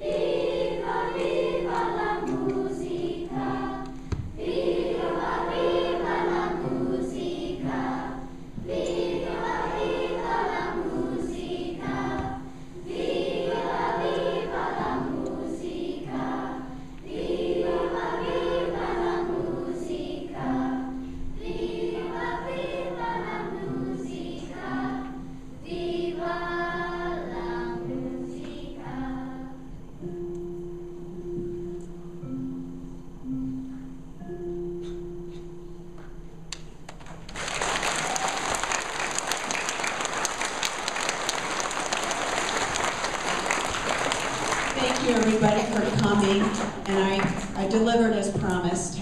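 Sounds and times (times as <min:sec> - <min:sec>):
children's choir singing: 0:00.0 - 0:30.1, 0:37.4 - 0:49.0.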